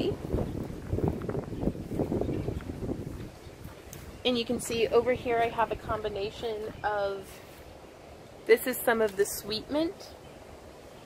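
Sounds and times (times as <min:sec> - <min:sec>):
wind rumbling on microphone: 0:00.0 - 0:08.6.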